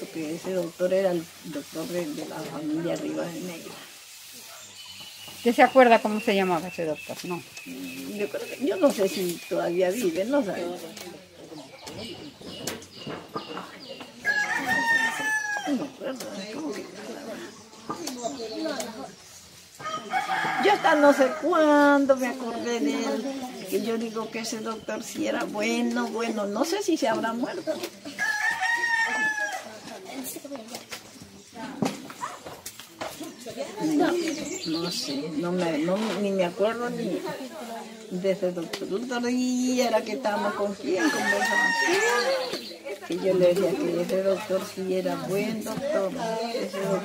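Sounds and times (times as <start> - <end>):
rooster crowing: 14.2 - 16.0, 19.8 - 21.7, 28.1 - 29.8, 40.9 - 42.6.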